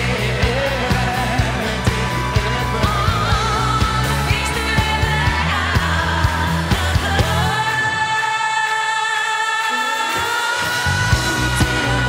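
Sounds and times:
drums and bass beat: 0.0 - 7.8, 10.6 - 12.0
live pop band playing: 0.0 - 12.0.

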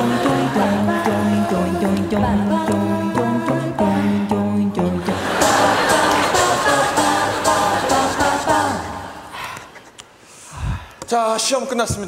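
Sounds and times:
mixed chorus singing a cappella: 0.0 - 9.6.

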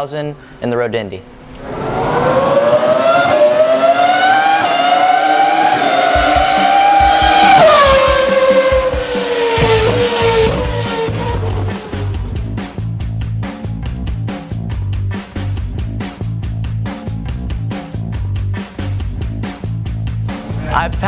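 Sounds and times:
race car engine accelerating: 1.4 - 12.5
music with steady beat: 6.0 - 21.0.

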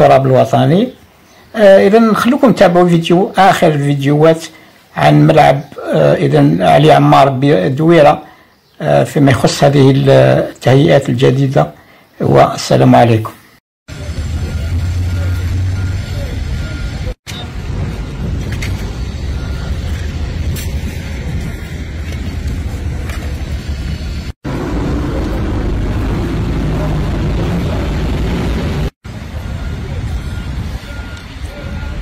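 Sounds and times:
low outdoor rumble: 13.9 - 32.0
faint voices: 29.3 - 32.0.

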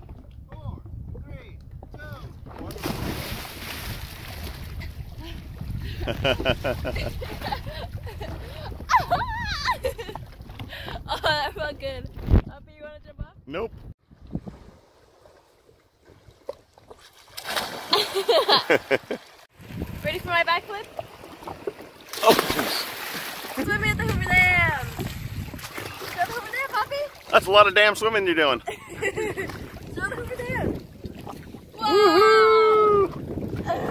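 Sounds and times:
person splashing into lake water: 2.5 - 7.0, 16.2 - 18.3, 20.9 - 23.6, 24.8 - 27.3
water churning and spraying: 2.6 - 4.7, 16.9 - 28.6
water lapping: 2.6 - 12.2, 14.2 - 33.9
laughter: 5.9 - 10.2, 17.9 - 19.2, 28.6 - 29.6
swimmer splashing: 16.2 - 19.5, 20.3 - 23.7.

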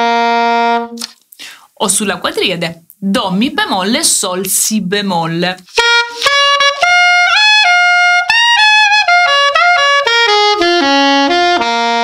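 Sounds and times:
soprano saxophone jazz line: 0.0 - 1.2, 5.6 - 12.0.

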